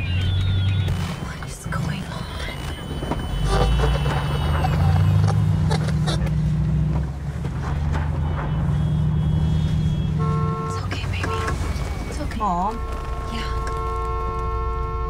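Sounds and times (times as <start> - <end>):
car engine low hum: 0.0 - 15.0
short tone: 2.7 - 5.4.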